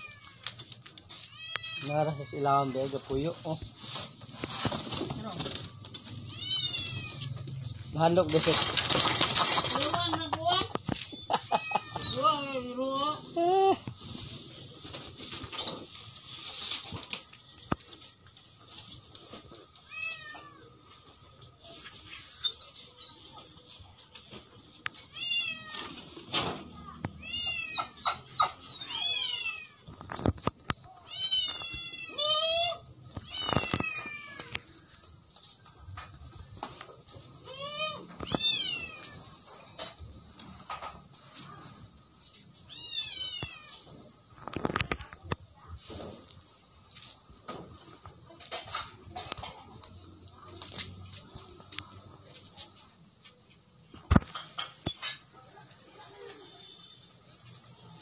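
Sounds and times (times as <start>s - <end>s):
young dog whining: 27.6s - 29.1s.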